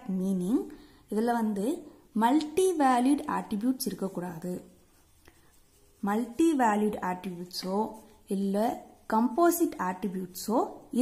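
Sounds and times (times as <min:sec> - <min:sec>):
pencil scratching on paper: 0:02.3 - 0:11.0.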